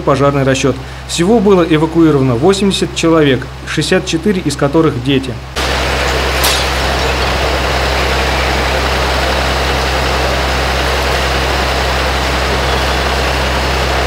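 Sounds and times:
diesel engines running: 0:05.4 - 0:14.0.

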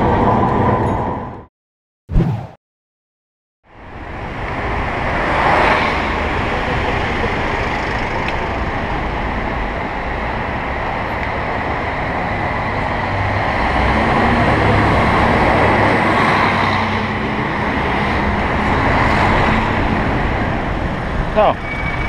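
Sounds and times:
street traffic noise: 0:03.7 - 0:22.0
bus engine humming: 0:06.0 - 0:21.6.

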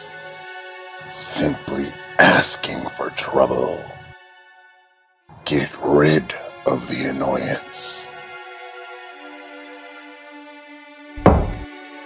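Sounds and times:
slow background music: 0:00.0 - 0:12.0
heavy impact thud: 0:11.2 - 0:11.7.

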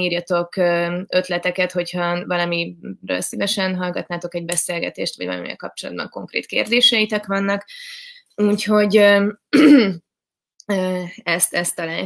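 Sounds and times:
woman speaking: 0:00.0 - 0:10.0, 0:10.6 - 0:12.0
woman clearing her throat: 0:09.5 - 0:10.0.

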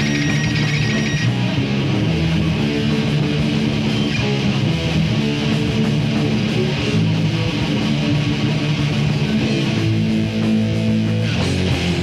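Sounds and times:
high ringing tone: 0:00.0 - 0:01.3
distorted electric guitar riff: 0:00.0 - 0:12.0
heavy metal band playing: 0:00.0 - 0:12.0.

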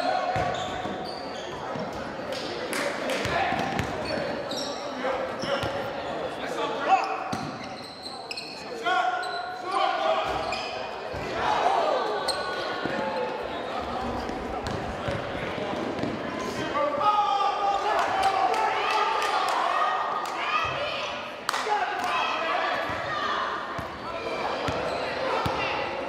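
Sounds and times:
sneakers squeaking: 0:00.0 - 0:02.2, 0:03.2 - 0:11.4, 0:12.2 - 0:16.2, 0:23.8 - 0:26.0.

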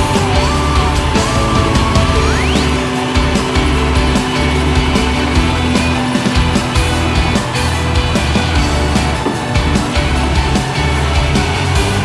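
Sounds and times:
rock music with steady beat: 0:00.0 - 0:12.0.

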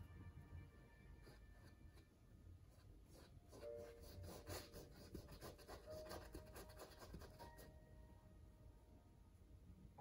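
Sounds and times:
paintbrush scraping on canvas: 0:02.7 - 0:07.7.

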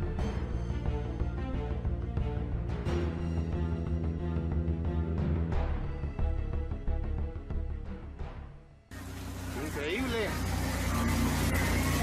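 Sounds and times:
background music: 0:00.0 - 0:12.0
low hum: 0:08.9 - 0:12.0
outdoor noise rush: 0:08.9 - 0:12.0.

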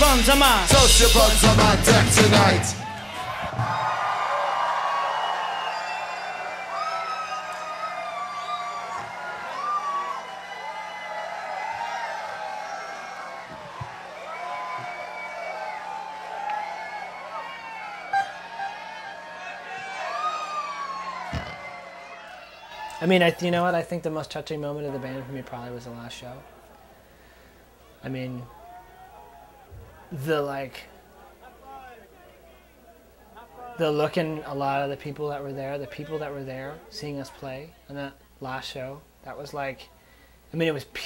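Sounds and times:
crowd cheering and whistling: 0:00.0 - 0:23.5, 0:24.6 - 0:30.2.

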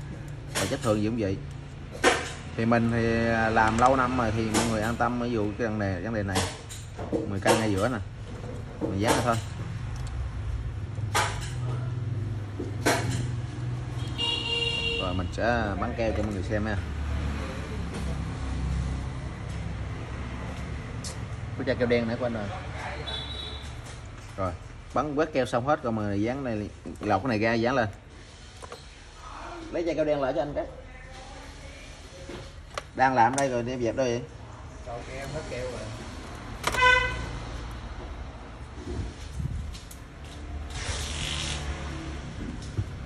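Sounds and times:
road traffic rumble: 0:00.0 - 0:43.0
vehicle horn toot: 0:14.0 - 0:15.3, 0:23.0 - 0:23.7, 0:36.7 - 0:37.3
vehicle passing: 0:15.4 - 0:23.1, 0:34.4 - 0:43.0.

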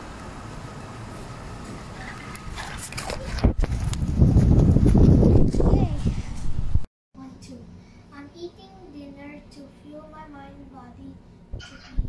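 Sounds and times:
quick footsteps on pavement: 0:02.4 - 0:05.7.

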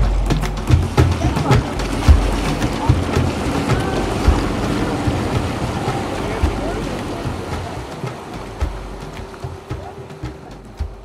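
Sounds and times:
indistinct voices: 0:00.0 - 0:11.0
outboard motor running: 0:00.0 - 0:11.0
water rushing: 0:00.0 - 0:11.0
wind buffeting microphone: 0:00.0 - 0:11.0.

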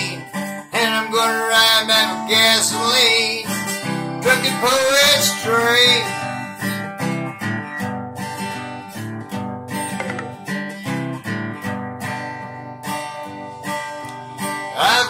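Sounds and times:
acoustic guitar strumming: 0:00.0 - 0:15.0.

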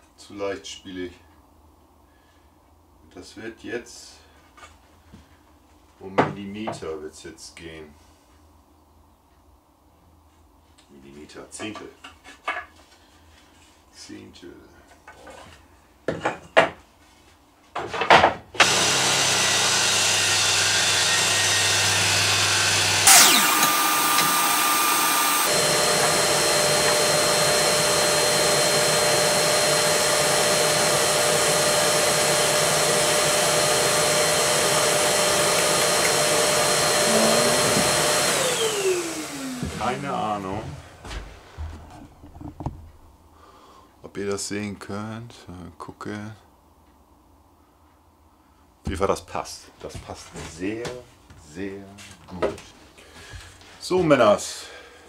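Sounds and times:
table saw running: 0:18.6 - 0:40.8
table saw winding down: 0:18.6 - 0:40.8.

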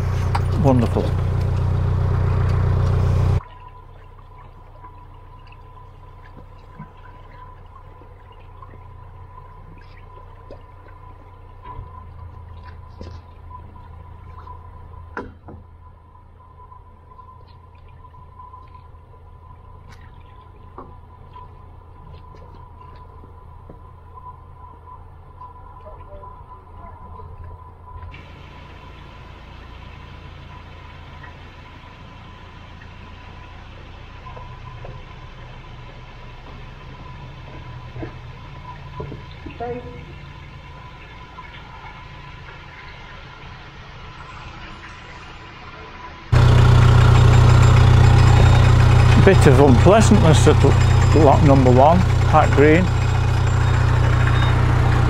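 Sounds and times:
boat engine humming: 0:00.0 - 0:55.0
water pouring and splashing: 0:02.5 - 0:15.1, 0:27.4 - 0:46.4.

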